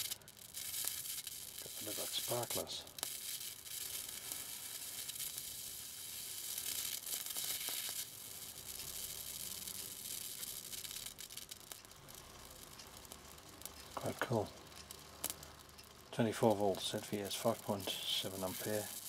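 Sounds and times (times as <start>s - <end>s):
electric arc sizzling and crackling: 0.0s - 19.0s.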